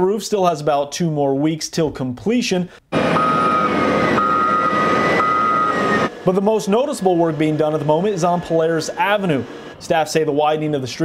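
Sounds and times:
diesel engine running: 2.9s - 9.8s
reversing alarm beeps: 3.0s - 6.1s.

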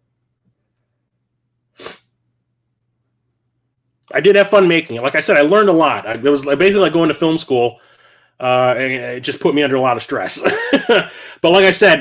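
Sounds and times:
man sneezing: 1.8s - 2.1s.

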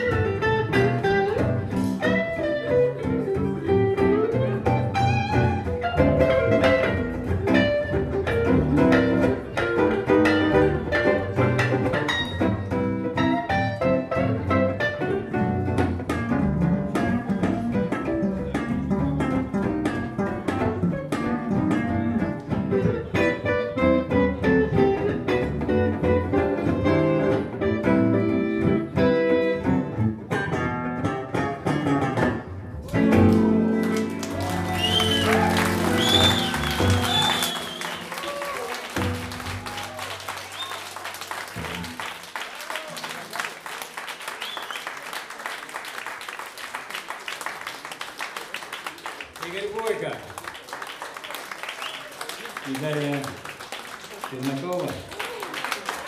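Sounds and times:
double bass: 0.0s - 38.3s
jazz on electric guitars: 0.0s - 43.4s
audience applause: 32.8s - 56.0s
audience shouting: 33.3s - 41.4s.

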